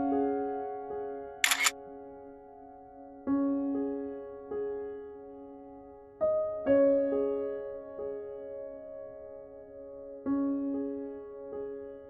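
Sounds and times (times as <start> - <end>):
slow piano music: 0.0 - 12.0
camera shutter snapping: 1.4 - 1.7.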